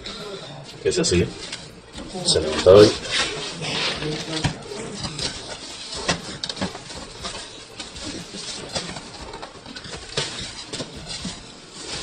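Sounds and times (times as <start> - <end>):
plastic wrapping crinkling: 1.2 - 12.0.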